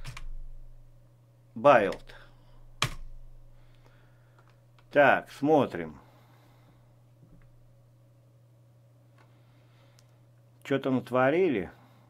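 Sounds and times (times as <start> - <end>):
keyboard keystroke: 0.0 - 0.4, 2.8 - 3.2.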